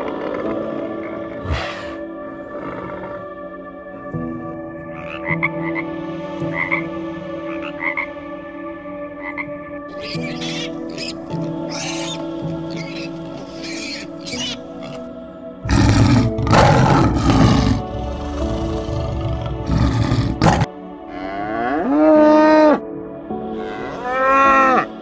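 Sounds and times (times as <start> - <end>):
background music: 0.0 - 25.0
lion roaring: 1.3 - 2.0, 15.7 - 22.8
cow mooing: 15.7 - 22.8, 23.5 - 24.9.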